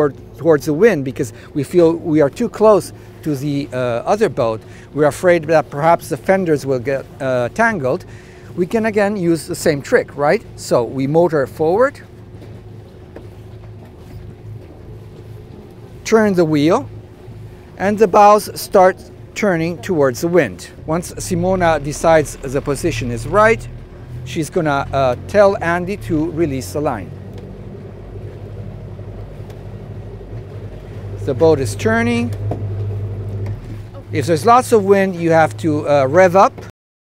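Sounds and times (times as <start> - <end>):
diesel engine running: 1.2 - 10.9, 11.8 - 36.6.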